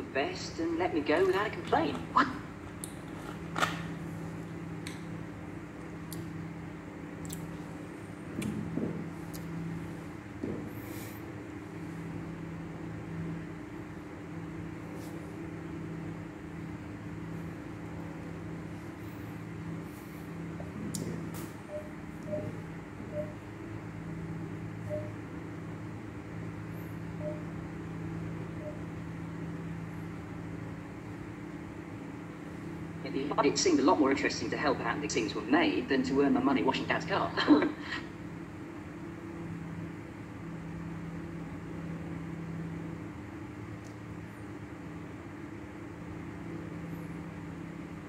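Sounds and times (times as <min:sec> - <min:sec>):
low mechanical hum: 0:00.0 - 0:48.0.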